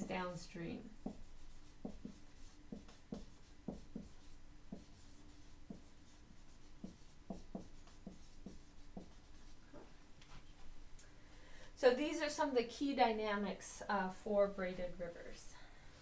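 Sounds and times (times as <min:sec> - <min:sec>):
marker writing on whiteboard: 0:00.9 - 0:09.9.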